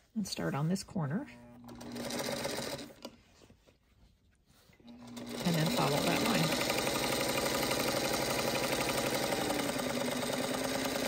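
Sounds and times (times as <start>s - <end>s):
sewing machine running: 1.4s - 3.1s, 4.8s - 11.0s.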